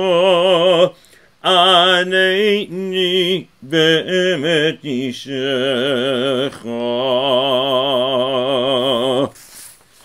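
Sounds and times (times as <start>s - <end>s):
man chanting a prayer: 0.0s - 9.4s.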